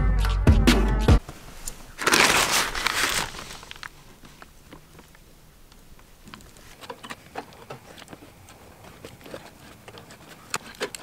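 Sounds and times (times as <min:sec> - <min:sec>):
wire mesh clicking and scratching: 0:06.3 - 0:11.0.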